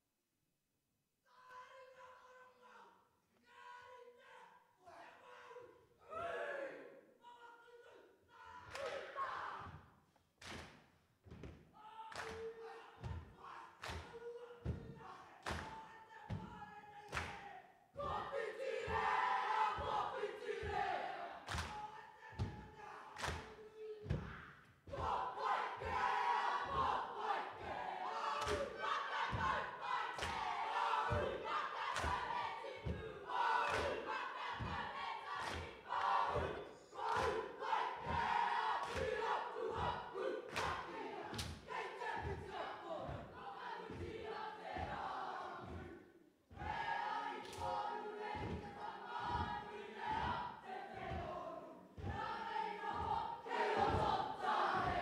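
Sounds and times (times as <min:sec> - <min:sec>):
crowd chanting and shouting: 0:01.3 - 0:10.0, 0:11.4 - 0:55.0.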